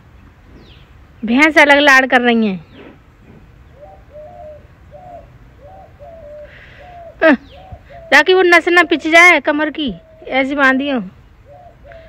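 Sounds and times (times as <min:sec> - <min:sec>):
dove cooing: 0:03.7 - 0:09.2, 0:09.9 - 0:12.0.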